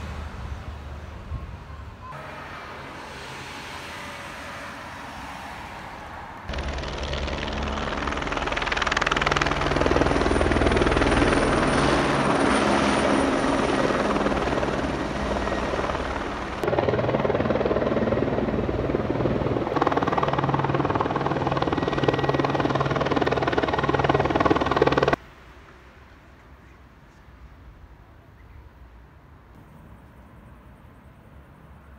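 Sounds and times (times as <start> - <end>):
helicopter rotor beating: 6.5 - 25.2.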